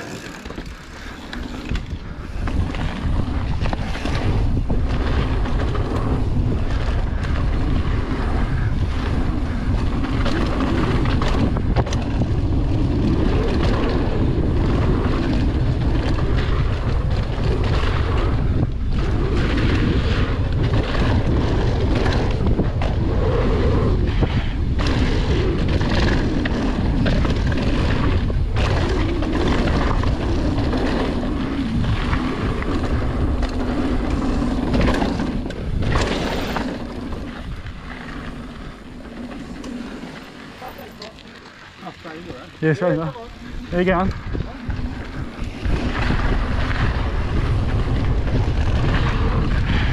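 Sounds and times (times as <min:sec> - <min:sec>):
bike knocks and rattles: 0:00.0 - 0:23.3, 0:24.4 - 0:41.0
tyres running over dirt: 0:00.0 - 0:49.9
wind buffeting microphone: 0:00.0 - 0:49.9.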